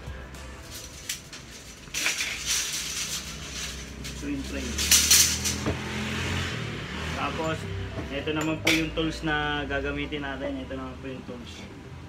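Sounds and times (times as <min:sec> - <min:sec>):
metal strip clattering: 0:00.6 - 0:05.8.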